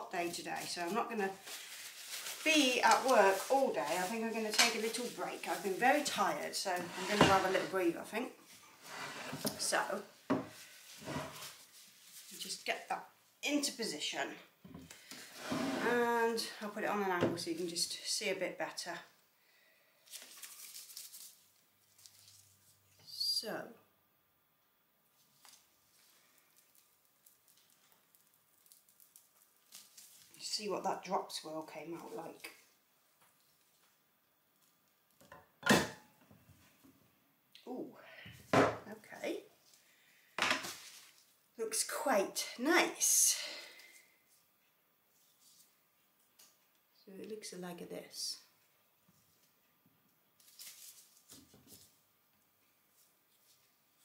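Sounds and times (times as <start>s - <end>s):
soap scraping and rustling: 0.2s - 12.8s
faint handling sounds: 0.2s - 12.9s, 20.0s - 22.9s, 43.9s - 46.9s.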